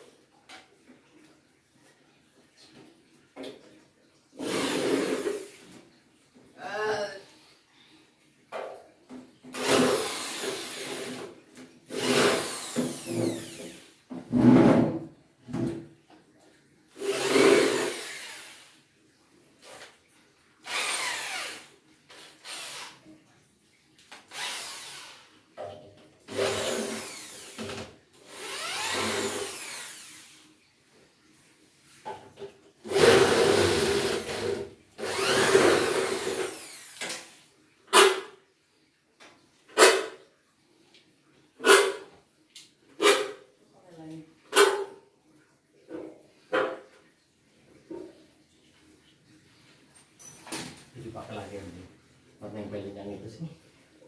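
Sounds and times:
cordless drill motor whirring: 0:09.6 - 0:11.2, 0:11.9 - 0:13.9, 0:17.0 - 0:18.6, 0:20.6 - 0:23.0, 0:24.3 - 0:25.3, 0:26.3 - 0:30.4, 0:32.9 - 0:37.1.

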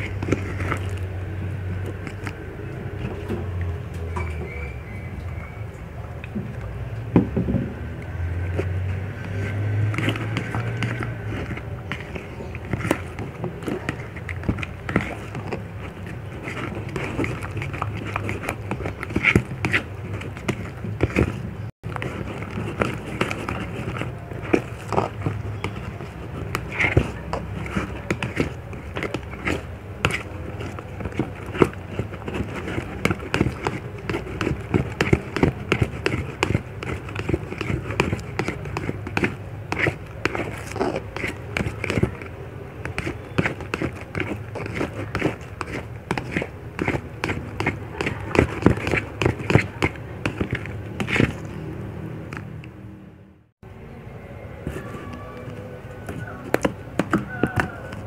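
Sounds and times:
wet squishing slime: 0:00.0 - 0:07.1, 0:07.7 - 0:52.9, 0:54.4 - 0:58.0.

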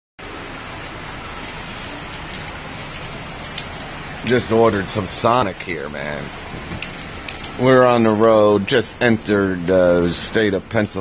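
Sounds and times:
rain falling: 0:00.2 - 0:11.0.

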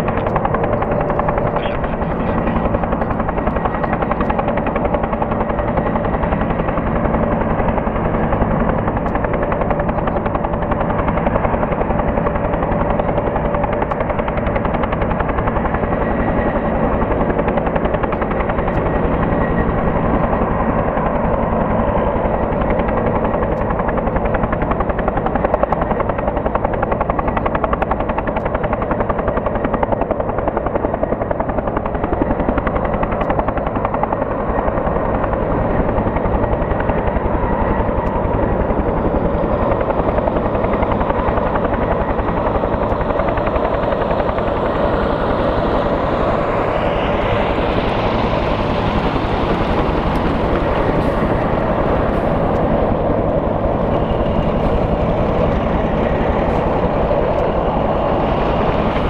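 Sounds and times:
helicopter rotor beating: 0:00.0 - 0:59.0
helicopter turbine noise: 0:00.0 - 0:59.0.

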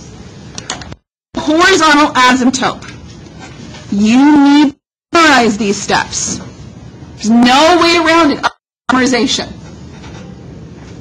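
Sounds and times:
woman speaking: 0:01.4 - 0:02.9, 0:03.9 - 0:06.5, 0:07.2 - 0:09.6.

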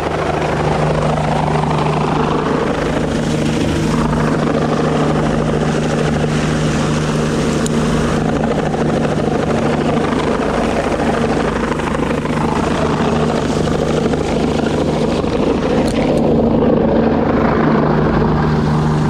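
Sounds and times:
helicopter hovering: 0:00.0 - 0:19.0.

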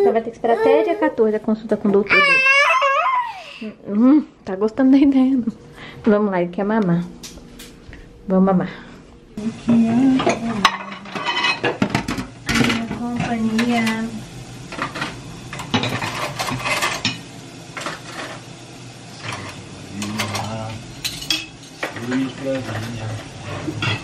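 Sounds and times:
person humming: 0:09.4 - 0:10.6
pots and dishes clinking: 0:10.1 - 0:14.1, 0:14.7 - 0:18.5, 0:19.2 - 0:24.0.

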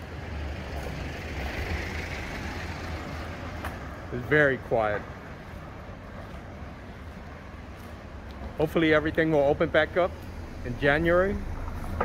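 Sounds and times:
tyres on paving stones: 0:00.0 - 0:12.0.

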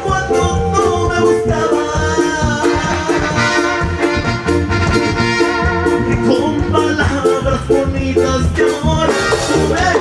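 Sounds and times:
drums: 0:00.0 - 0:10.0
electric bass: 0:00.0 - 0:10.0
keyboard: 0:00.0 - 0:10.0.

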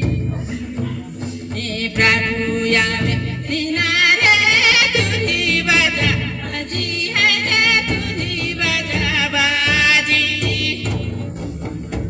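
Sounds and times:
folk music accompaniment: 0:00.0 - 0:12.0.

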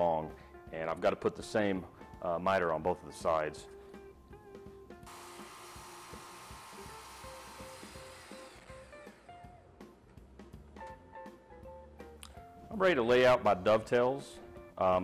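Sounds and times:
quiet background music: 0:00.0 - 0:15.0
miter saw cutting board: 0:05.1 - 0:09.3.

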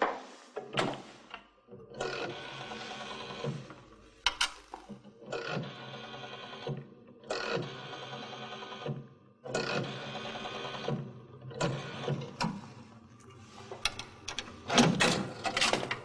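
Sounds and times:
rotary dial whirring: 0:02.0 - 0:16.0.

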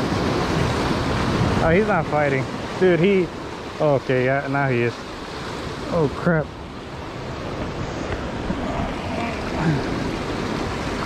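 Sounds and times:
surf washing among rocks: 0:00.0 - 0:11.0.

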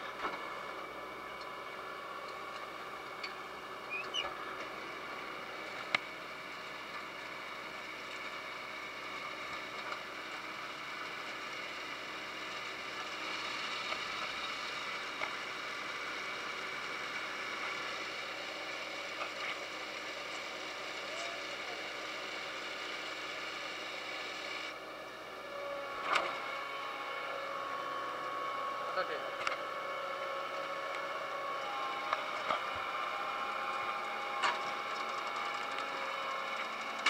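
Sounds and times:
machine hum with whining tones: 0:00.0 - 0:37.0.

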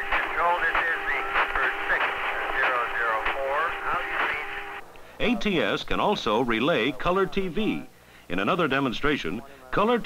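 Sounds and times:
radio voice transmission: 0:00.0 - 0:10.0.

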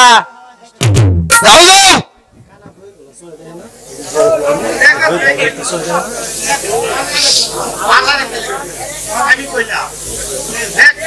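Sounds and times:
hiss: 0:03.2 - 0:11.0.

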